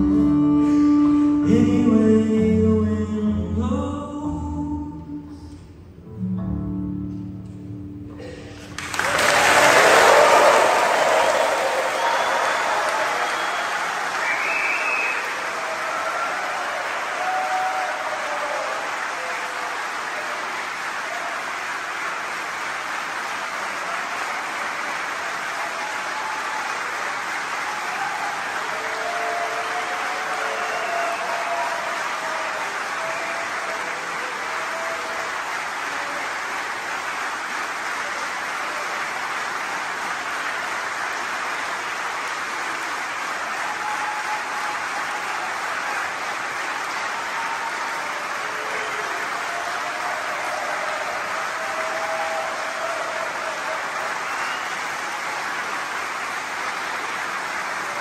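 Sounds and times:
audience applauding: 8.2s - 58.0s
audience calls: 8.2s - 58.0s.

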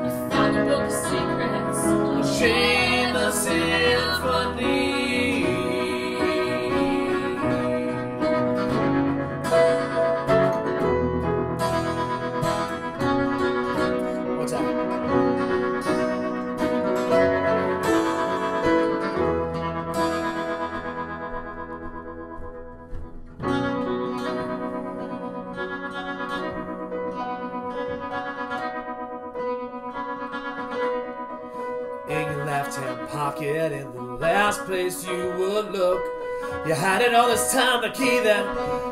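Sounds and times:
acoustic guitar: 0.0s - 38.9s
piano: 0.0s - 38.9s.

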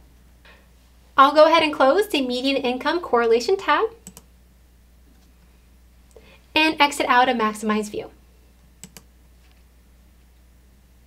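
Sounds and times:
low room hum: 0.0s - 11.0s
mouse clicks: 4.0s - 4.3s, 8.8s - 9.1s.

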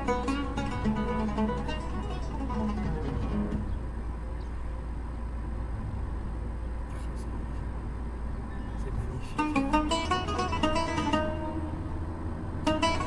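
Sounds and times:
plucked-string music: 0.0s - 4.5s, 9.2s - 13.0s
car engine and tyre rumble: 0.0s - 13.0s.

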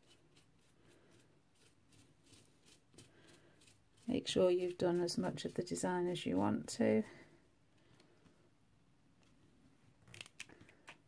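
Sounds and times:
paintbrush dabbing through stencil: 0.0s - 7.1s.

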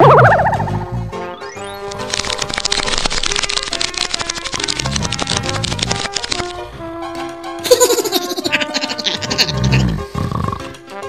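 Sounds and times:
background music: 0.0s - 11.0s
cartoon snore: 9.5s - 10.8s.

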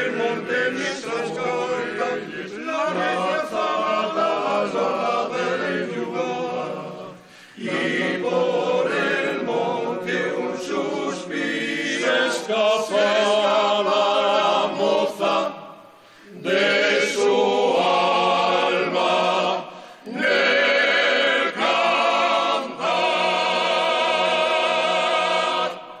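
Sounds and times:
male a cappella group singing: 0.0s - 26.0s.

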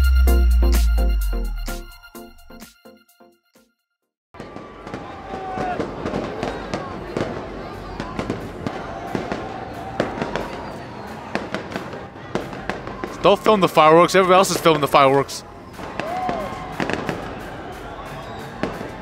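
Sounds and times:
crowd chatter: 4.4s - 19.0s
fireworks banging: 4.4s - 19.0s.

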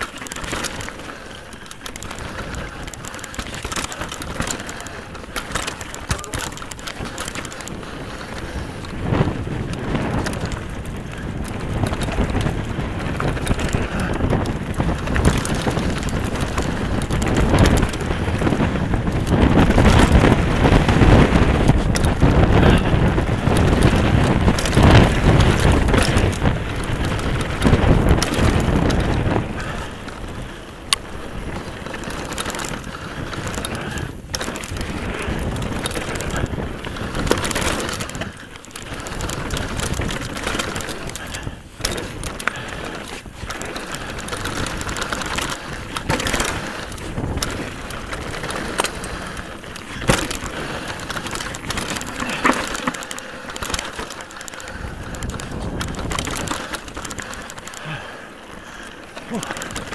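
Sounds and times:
bike tyres and frame rattling: 0.0s - 59.9s
wind buffeting microphone: 0.0s - 59.9s.

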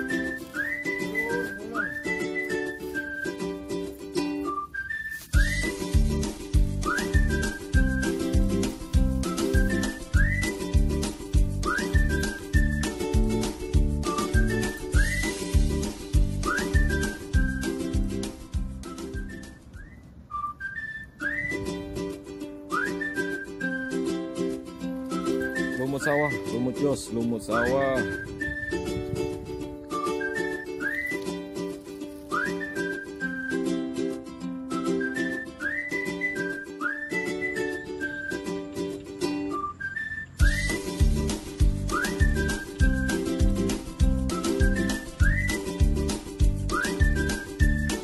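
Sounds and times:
whistled tune over chords: 0.0s - 3.5s, 4.4s - 6.0s, 6.8s - 10.9s, 11.6s - 13.0s, 14.0s - 15.7s, 16.4s - 21.8s, 22.7s - 24.2s, 25.1s - 26.7s, 27.5s - 29.0s, 29.9s - 31.4s, 32.3s - 33.8s, 34.7s - 38.6s, 39.4s - 41.2s, 41.8s - 46.0s, 46.6s - 48.0s
plucked string accompaniment: 0.0s - 19.7s, 21.3s - 39.8s, 40.4s - 48.0s
heavy low beat: 40.4s - 44.6s.

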